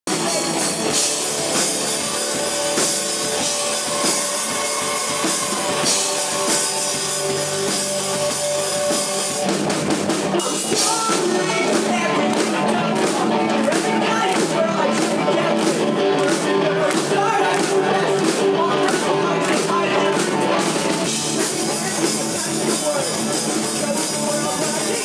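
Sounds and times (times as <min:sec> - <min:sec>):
bass guitar: 0:00.0 - 0:25.0
distorted electric guitar: 0:00.0 - 0:25.0
drum kit: 0:00.0 - 0:25.0
live rock band playing: 0:00.0 - 0:25.0.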